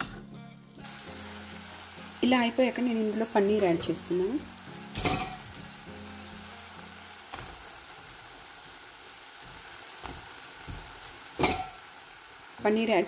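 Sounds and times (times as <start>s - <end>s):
food sizzling in a pan: 0.1s - 13.0s.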